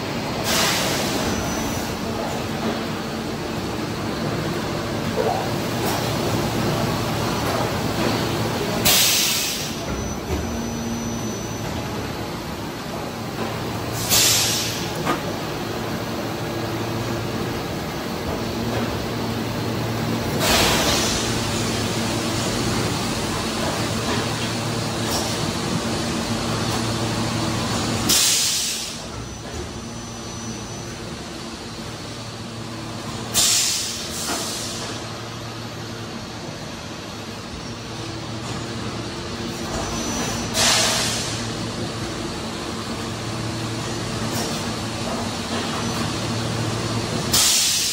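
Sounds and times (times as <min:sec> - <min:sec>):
industrial machine drone: 0:00.0 - 0:47.9
air hiss: 0:00.4 - 0:01.3, 0:08.8 - 0:09.8, 0:14.0 - 0:14.9, 0:28.1 - 0:29.0, 0:33.3 - 0:35.0, 0:40.6 - 0:41.5, 0:47.3 - 0:47.9.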